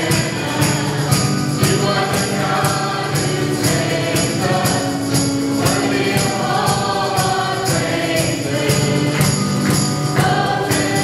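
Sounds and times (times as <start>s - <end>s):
band accompaniment: 0.0s - 11.0s
jingling percussion hits: 0.0s - 11.0s
voices singing worship song: 0.0s - 11.0s.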